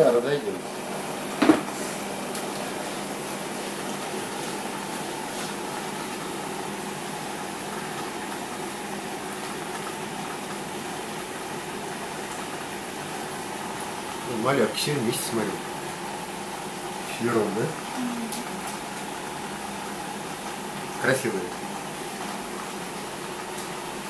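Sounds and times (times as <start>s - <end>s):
aquarium air pump bubbling: 0.0s - 24.0s.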